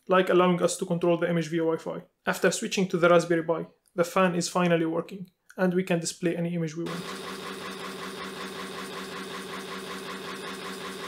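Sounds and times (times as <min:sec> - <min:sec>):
fan motor humming with pulsing: 0:06.9 - 0:11.0.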